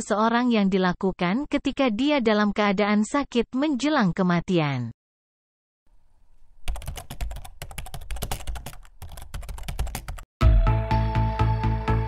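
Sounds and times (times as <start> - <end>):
computer keyboard typing: 6.7 - 10.3.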